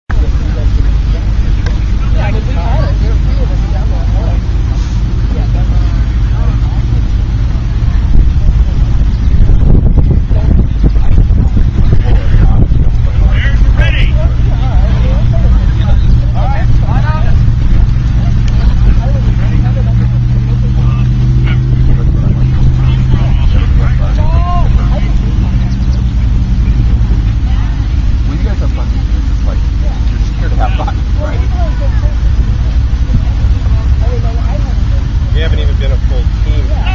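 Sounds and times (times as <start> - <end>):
heavy low rumble: 0.1 - 36.9
steady low hum: 0.1 - 36.9.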